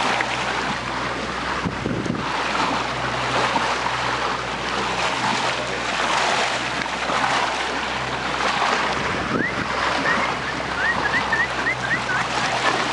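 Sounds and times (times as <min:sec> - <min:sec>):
boat engine idling: 0:00.0 - 0:12.9
choppy sea water rushing: 0:00.0 - 0:12.9
wind: 0:00.0 - 0:12.9.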